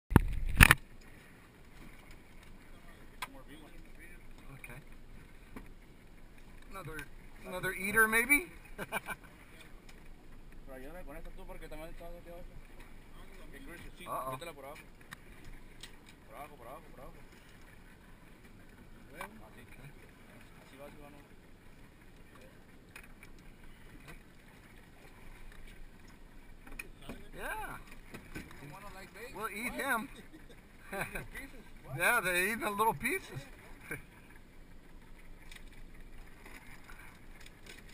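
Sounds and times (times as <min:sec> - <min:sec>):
sea and wind: 0:00.1 - 0:37.9.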